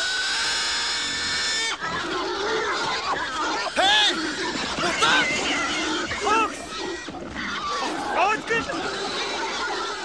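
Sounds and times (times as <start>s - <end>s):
low wavering pig cries: 0.0s - 10.0s
pig squealing: 0.0s - 10.0s.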